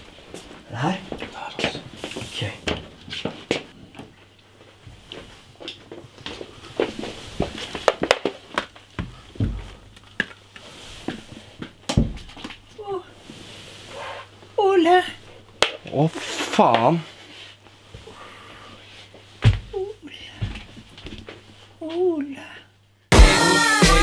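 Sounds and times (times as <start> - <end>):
soft footsteps: 0.0 - 9.8
clothing rustle: 0.0 - 9.9, 10.7 - 19.8
person whispering: 0.7 - 2.7.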